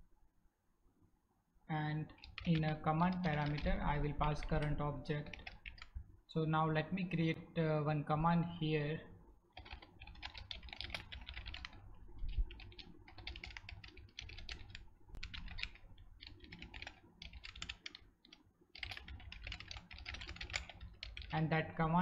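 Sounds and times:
fast typing on keyboard: 2.1 - 6.0, 9.5 - 21.4.

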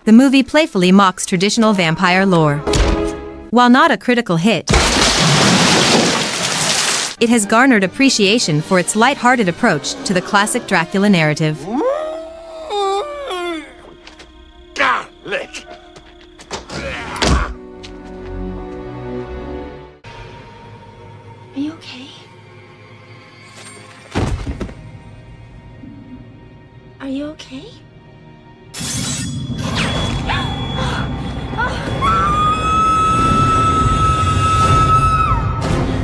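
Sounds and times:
film score music: 0.0 - 3.6, 7.2 - 36.0
woman screaming: 11.6 - 13.8, 31.6 - 35.5
man crying out: 11.7 - 13.9.

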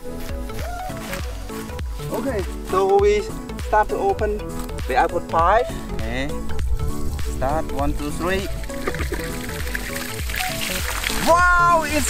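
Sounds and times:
background music: 0.0 - 12.0
water splashing from pipe: 8.7 - 12.0.

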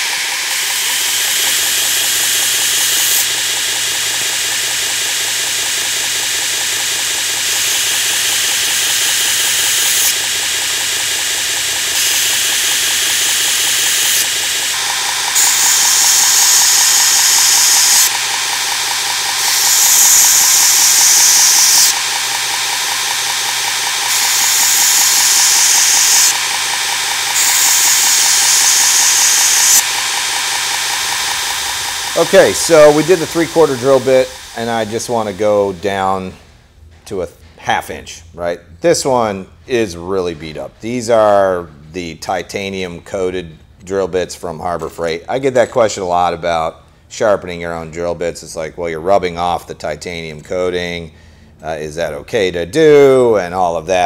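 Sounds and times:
belt grinder motor humming: 0.0 - 36.4
drill bit grinding on belt: 0.0 - 36.4.

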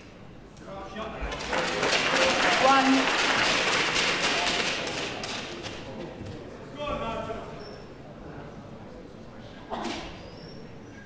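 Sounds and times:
crowd cheering and applauding: 1.4 - 5.3.

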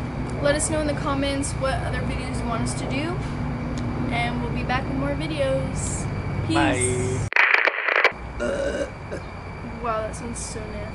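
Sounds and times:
person speaking: 6.5 - 7.9
person burping: 8.4 - 9.3.

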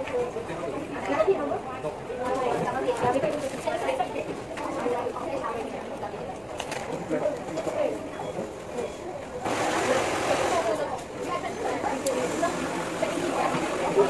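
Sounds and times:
indistinct chatter: 0.0 - 14.0.

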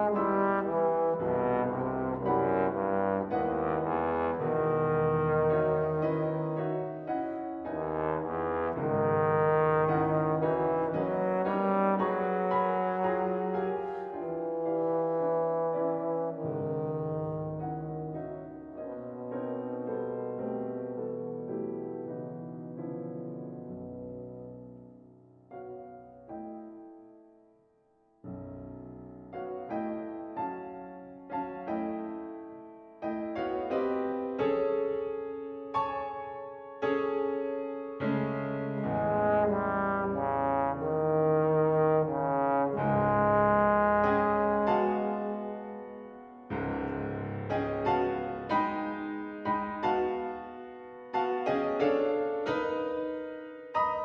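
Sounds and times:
bass trombone low notes: 0.0 - 7.0, 7.6 - 19.4, 38.3 - 48.6
piano accompaniment: 0.0 - 54.0.

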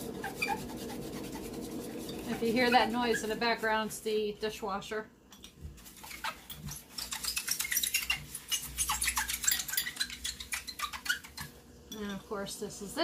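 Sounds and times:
dishwasher running: 0.0 - 3.9
glass bottle scrubbed by hand: 0.0 - 3.9, 5.8 - 11.5.

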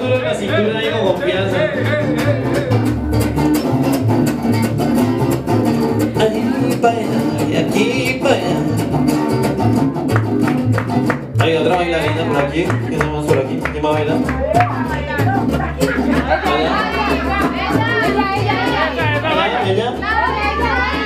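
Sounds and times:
mariachi band playing: 0.0 - 21.0
pulsing bass line: 0.0 - 21.0
strummed guitars: 0.0 - 21.0.

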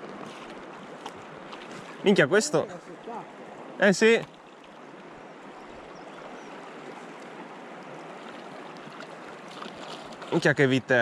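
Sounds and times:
stream water flowing: 0.0 - 11.0.

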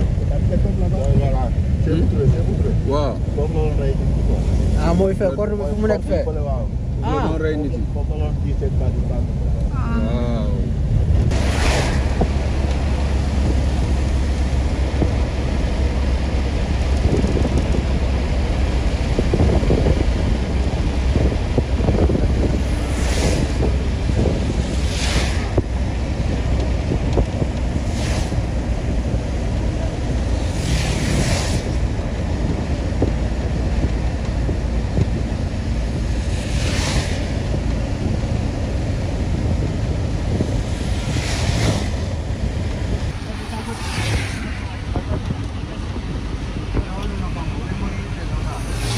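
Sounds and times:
traffic swishing past on wet road: 0.0 - 9.5, 10.4 - 48.9
road rumble: 0.0 - 48.9
wind buffeting: 0.0 - 48.9.

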